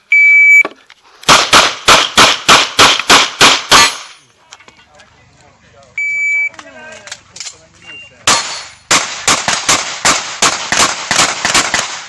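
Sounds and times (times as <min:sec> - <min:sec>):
shot timer beep: 0:00.1 - 0:00.6, 0:06.0 - 0:06.5
pistol shots in quick succession: 0:01.3 - 0:04.1, 0:08.3 - 0:12.0.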